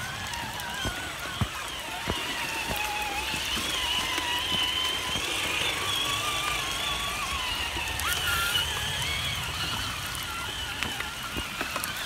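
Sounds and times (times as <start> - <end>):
running water: 0.0 - 12.0
toy truck motors whining: 0.0 - 12.0.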